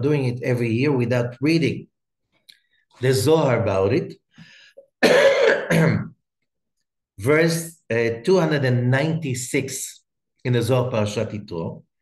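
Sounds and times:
man coughing: 5.0 - 6.2.

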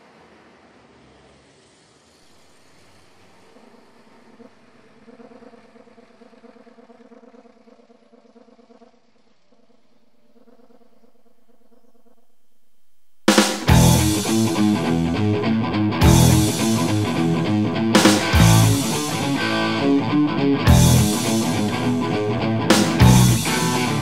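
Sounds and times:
bus engine driving past: 0.0 - 7.2, 13.7 - 24.0.

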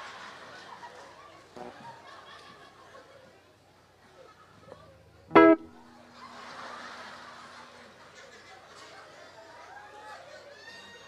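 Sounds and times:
audience chatter and laughter: 0.0 - 11.0
guitar note ringing: 5.3 - 6.1.

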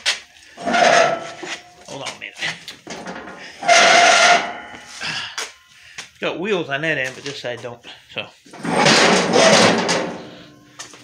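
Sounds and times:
metal shelving scraping on concrete: 0.6 - 1.8, 2.8 - 5.0, 8.5 - 10.6.

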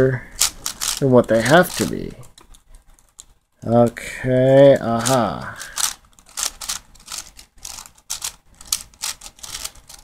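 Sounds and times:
plastic puzzle layers clicking: 4.7 - 10.0.

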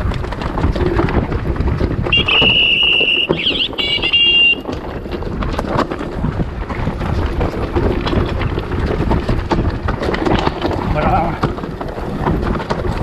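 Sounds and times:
bike rattling over rocks: 0.0 - 13.0
wind on microphone: 0.0 - 13.0
high disc-brake squeal: 2.2 - 4.6.

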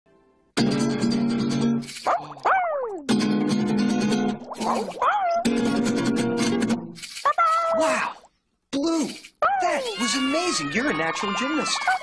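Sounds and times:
acoustic guitar strumming chords: 3.1 - 4.4.

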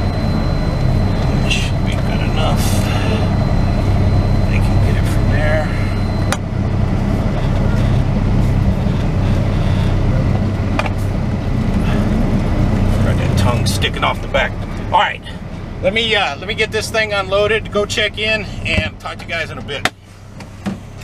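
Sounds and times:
diesel truck engine running: 0.0 - 21.0.

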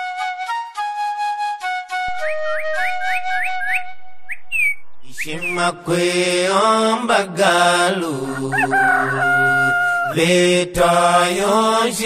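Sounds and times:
whistled rising notes: 0.8 - 6.0
held low tone: 2.1 - 6.2.

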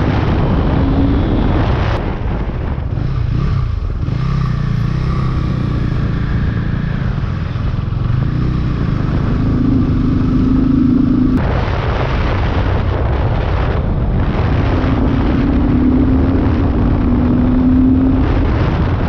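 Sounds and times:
motorcycle engine running: 0.0 - 19.0
wind noise on microphone: 0.0 - 19.0.

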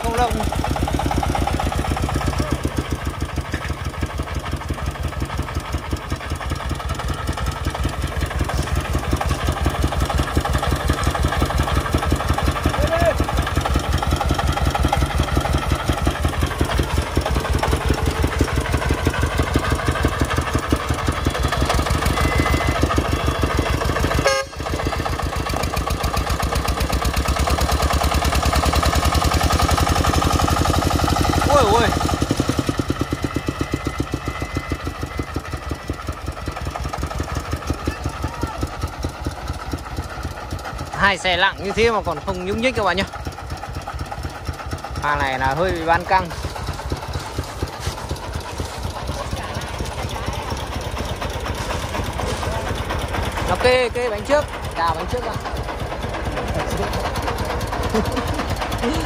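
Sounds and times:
diesel engine chugging under load: 0.0 - 59.0.

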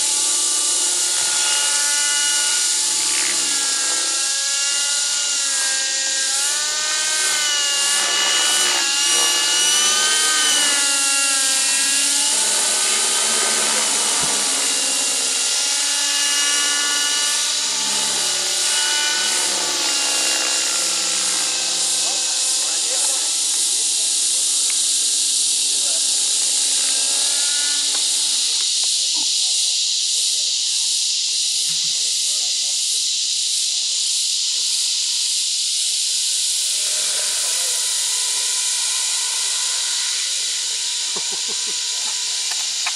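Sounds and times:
model helicopter engine and rotor: 0.0 - 42.9
steady high hiss: 0.0 - 42.9.

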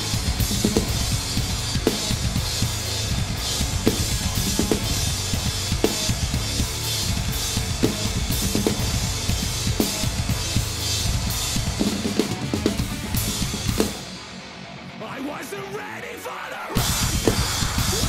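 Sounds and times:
bass drum strokes: 0.0 - 14.0
heavy metal backing track: 0.0 - 18.0.

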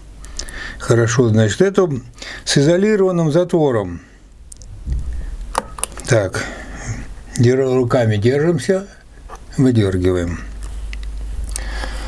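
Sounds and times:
low handling rumble: 4.6 - 6.2.

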